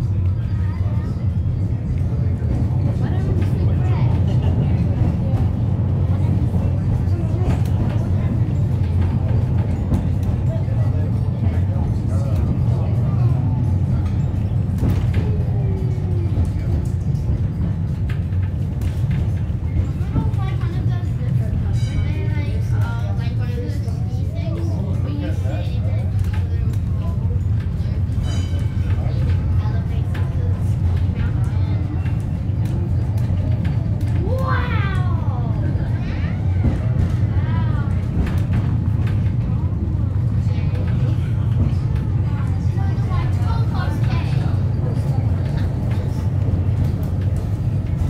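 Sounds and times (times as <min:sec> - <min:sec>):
cable car rumble: 0:00.0 - 0:48.0.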